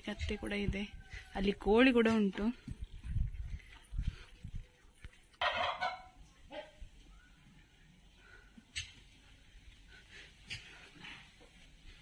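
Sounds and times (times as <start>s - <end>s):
turkey gobbling: 5.4s - 6.7s.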